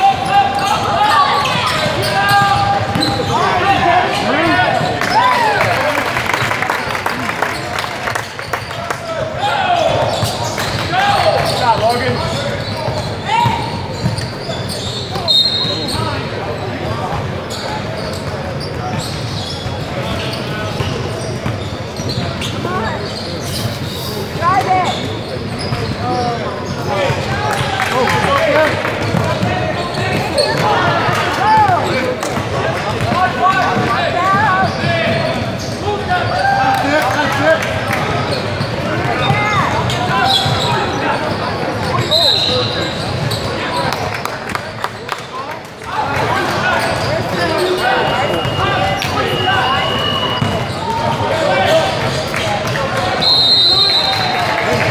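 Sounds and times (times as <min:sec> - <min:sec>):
indistinct shouts and chatter: 0:00.0 - 0:54.9.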